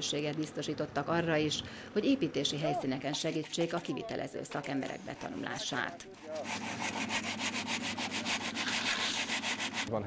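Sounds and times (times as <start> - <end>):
straightedge scraping mortar: 6.2 - 9.9.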